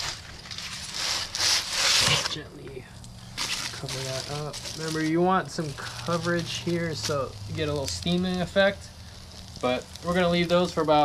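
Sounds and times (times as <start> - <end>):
aluminium foil crinkling: 0.0 - 11.0
foil packet set on grill grate: 0.0 - 11.0.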